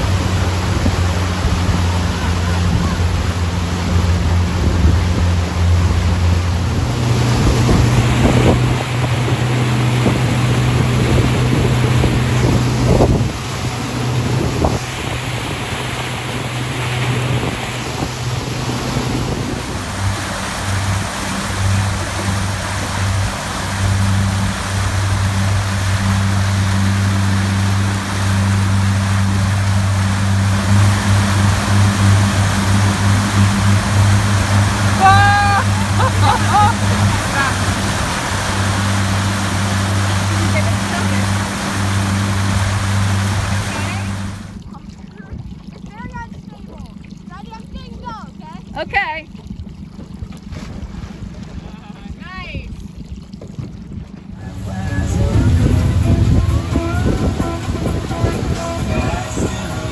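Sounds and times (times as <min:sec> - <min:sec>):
outboard motor drone: 0:00.0 - 0:59.9
rushing water of wake: 0:00.0 - 0:59.9.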